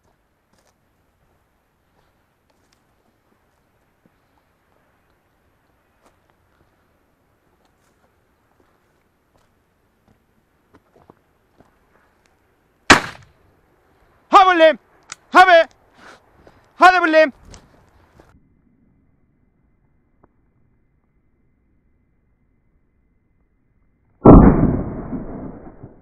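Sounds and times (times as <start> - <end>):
shotgun shot: 12.9 - 13.3, 24.2 - 26.0.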